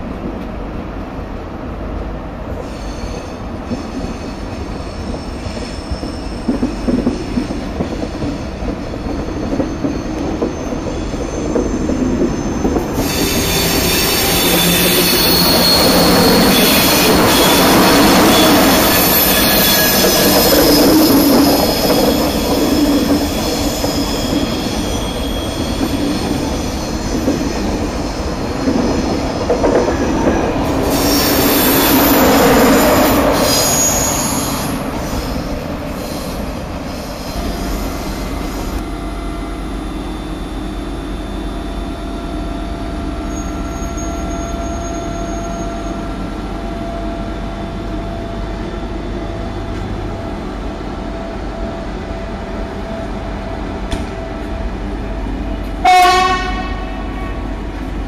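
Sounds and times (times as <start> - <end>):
train wheels squealing on rails: 2.4 - 58.0.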